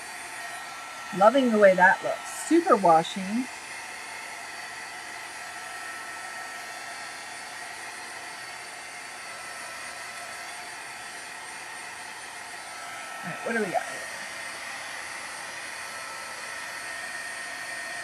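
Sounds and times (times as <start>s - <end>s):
heat tool blowing whir: 0.0s - 18.0s.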